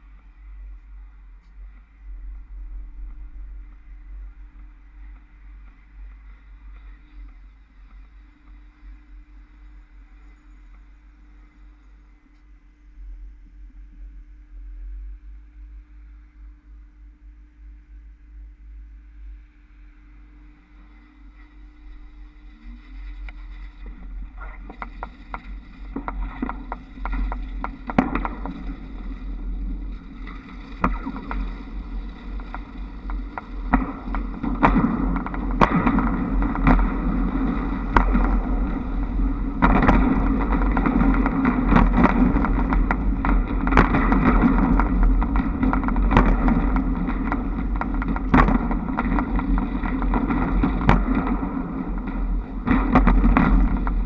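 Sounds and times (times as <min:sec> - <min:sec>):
wind on microphone: 0:00.0 - 0:11.9, 0:20.2 - 0:54.0.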